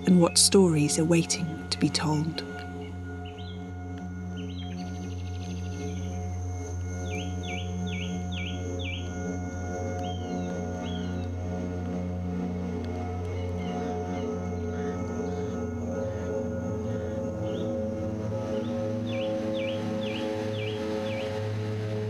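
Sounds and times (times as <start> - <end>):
birdsong: 0.0 - 11.8, 13.2 - 22.0
ambient drone music: 0.0 - 22.0.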